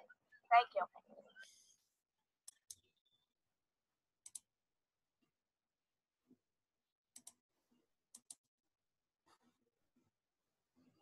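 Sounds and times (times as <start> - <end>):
computer mouse clicking: 2.4 - 2.9, 4.2 - 4.5, 7.1 - 7.4, 8.1 - 8.5.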